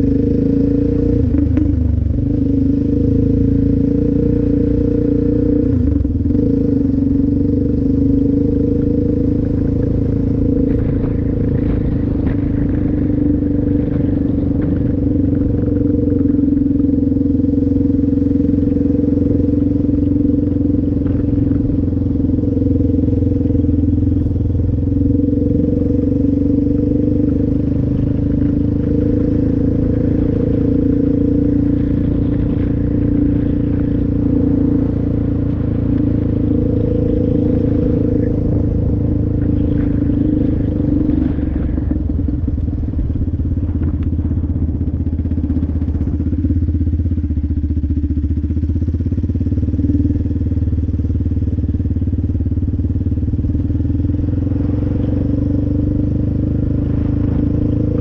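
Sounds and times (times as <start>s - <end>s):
quad engine cruising: 0.0s - 58.0s.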